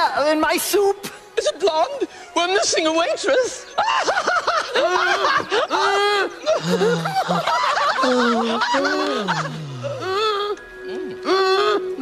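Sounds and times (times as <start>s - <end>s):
high-pitched comic laughter: 3.8s - 9.6s.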